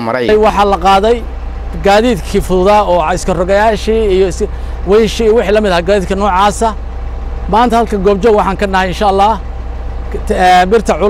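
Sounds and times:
man speaking into microphones: 0.0 - 6.8, 7.5 - 9.4, 10.1 - 11.0
steady low rumble: 0.3 - 11.0.

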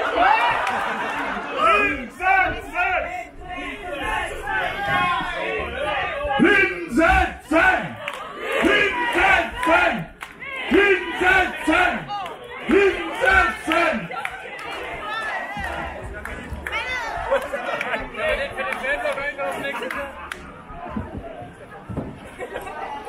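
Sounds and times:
crowd noise: 0.0 - 23.0
man shouting a chant: 6.3 - 8.0, 8.6 - 14.1.

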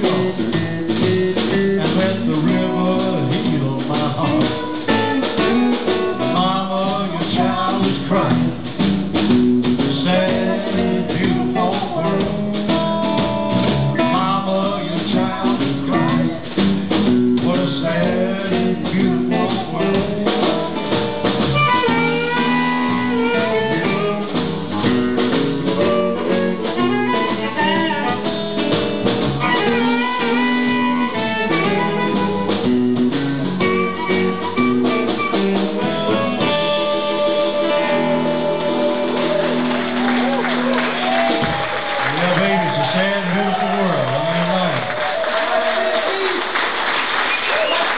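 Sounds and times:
blues band playing: 0.0 - 47.9.

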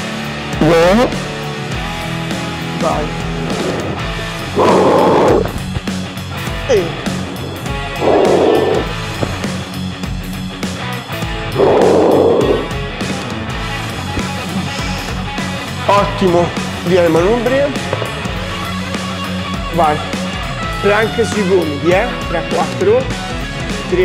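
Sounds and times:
workout music: 0.4 - 24.0.

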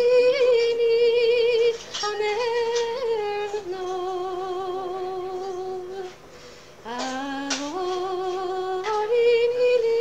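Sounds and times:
woman singing unaccompanied: 0.0 - 6.2, 6.8 - 10.0
singer breath: 6.2 - 6.8.

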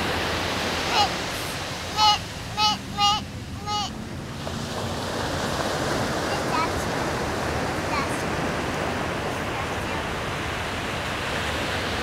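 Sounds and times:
ocean surf: 0.0 - 12.0
short high-pitched calls: 2.0 - 3.9.

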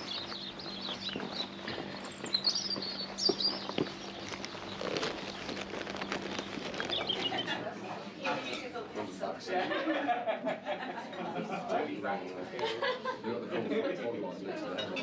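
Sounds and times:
footsteps on tarmac: 0.0 - 7.5
small birds chirping: 0.0 - 7.6.

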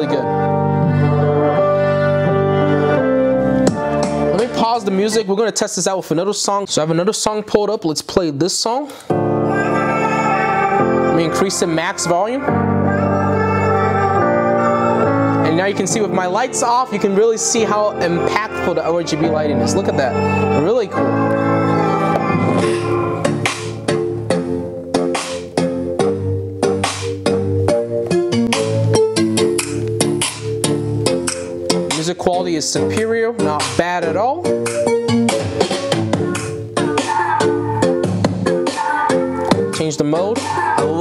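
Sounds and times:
song through computer speakers: 0.0 - 41.0.

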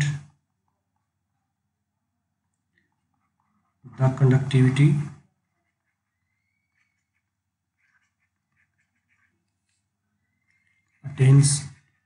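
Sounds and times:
stylus scratching on a tablet: 2.9 - 12.0.

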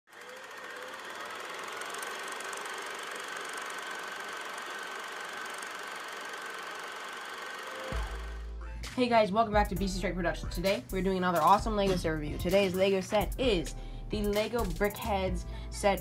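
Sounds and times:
film projector whirring and rattling: 0.1 - 8.5.

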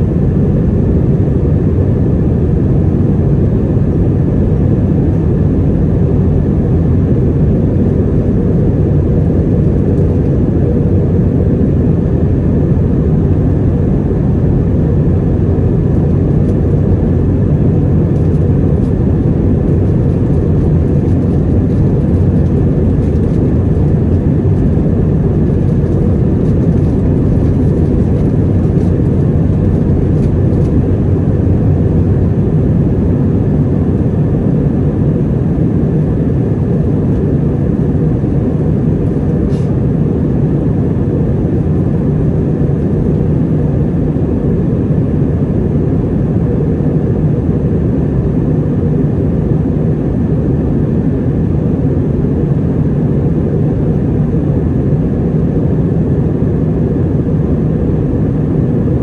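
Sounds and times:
jet engine rumble and airflow: 0.0 - 59.0.

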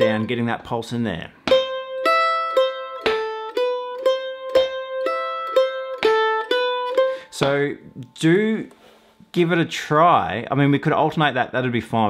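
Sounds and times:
mandolin picking single notes: 0.0 - 8.9.

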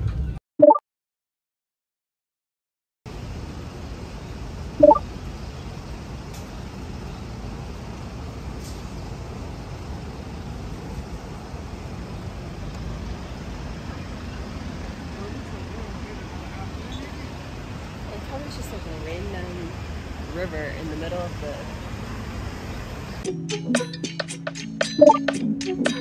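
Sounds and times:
traffic rumble: 3.1 - 23.2.

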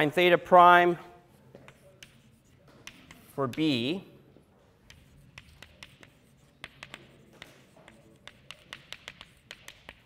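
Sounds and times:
chalk writing on chalkboard: 1.2 - 10.0.

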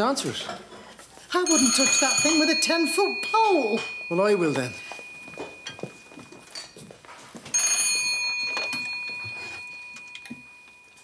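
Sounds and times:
telephone bell ringing: 1.4 - 6.9, 7.5 - 11.0.

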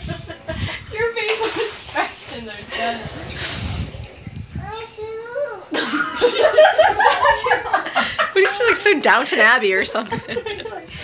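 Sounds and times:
laughter: 0.0 - 0.8, 5.7 - 8.7, 10.0 - 11.0.

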